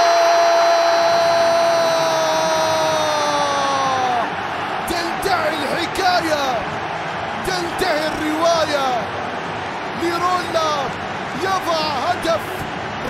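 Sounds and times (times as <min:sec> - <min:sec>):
stadium crowd cheering: 0:00.0 - 0:13.0.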